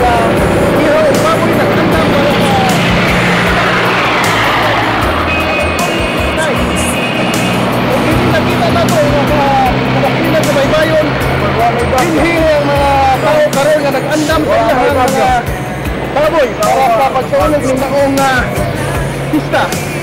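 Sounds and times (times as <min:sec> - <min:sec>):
man talking: 0:00.0 - 0:03.1, 0:07.9 - 0:15.5, 0:16.2 - 0:18.7
background music: 0:00.0 - 0:20.0
vehicle engine running: 0:00.0 - 0:20.0.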